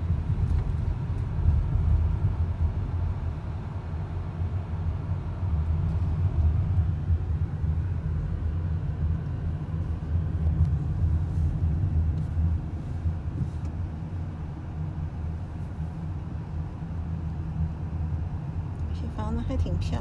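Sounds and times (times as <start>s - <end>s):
car engine and tyre noise: 0.0s - 20.0s.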